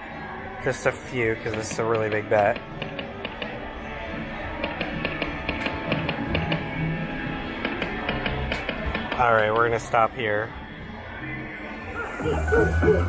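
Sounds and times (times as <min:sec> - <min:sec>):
slot machine game music: 0:12.0 - 0:13.0.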